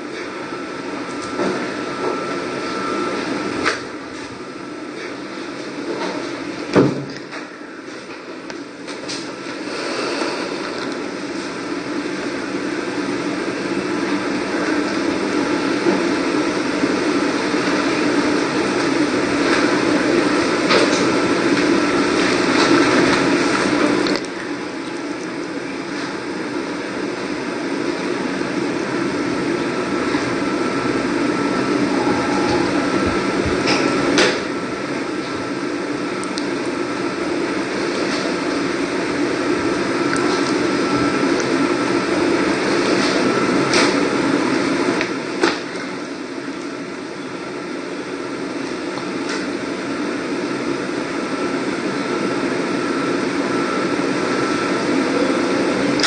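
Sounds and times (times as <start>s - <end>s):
room hiss and hum: 0.0s - 56.0s.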